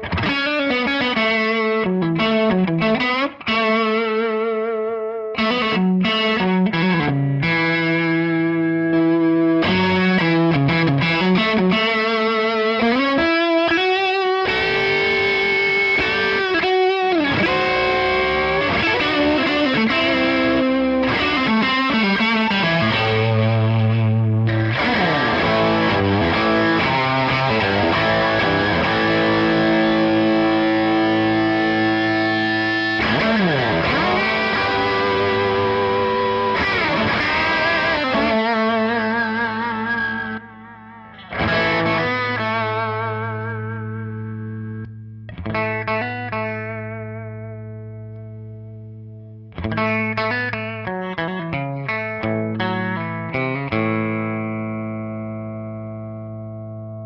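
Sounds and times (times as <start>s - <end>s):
overdriven electric guitar lead: 0.0s - 57.0s.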